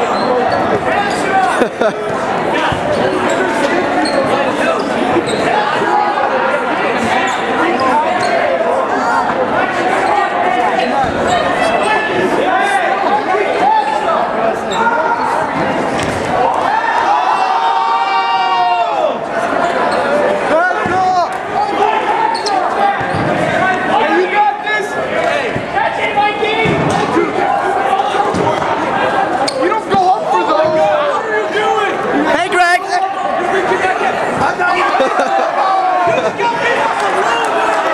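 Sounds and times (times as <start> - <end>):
players shouting: 0.0 - 37.9.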